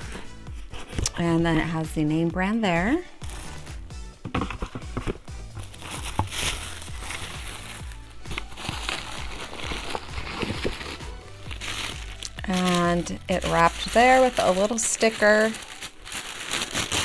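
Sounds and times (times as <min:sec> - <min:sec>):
tissue paper rustling: 0:03.2 - 0:17.0.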